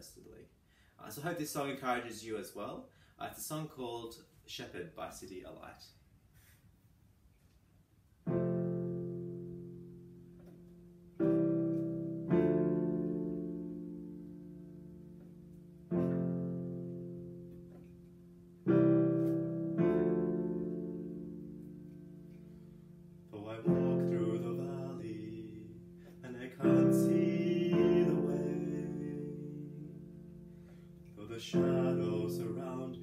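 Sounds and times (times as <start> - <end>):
piano playing slow chords: 8.2 - 33.0.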